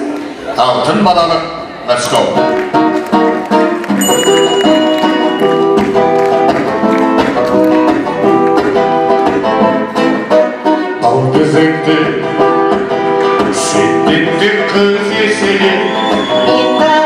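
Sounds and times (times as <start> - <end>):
acoustic guitar plucking: 2.2 - 17.0.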